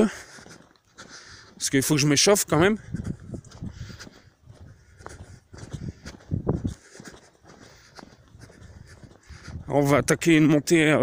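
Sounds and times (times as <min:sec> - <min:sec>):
person breathing: 0:00.0 - 0:01.6, 0:02.8 - 0:09.7
footsteps on stony path: 0:00.0 - 0:11.0.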